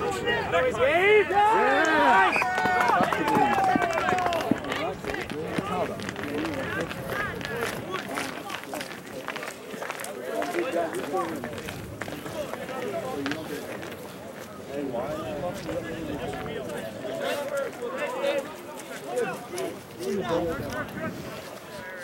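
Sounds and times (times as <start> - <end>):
voices shouting and calling out: 0.0 - 22.0.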